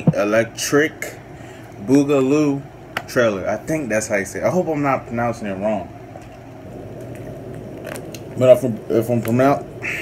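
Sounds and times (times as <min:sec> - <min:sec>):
plastic bottle crackling: 0:07.0 - 0:09.6.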